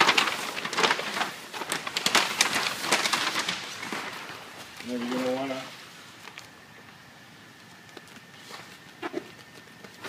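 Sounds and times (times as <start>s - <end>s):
vinyl film handling noises: 0.0s - 5.6s.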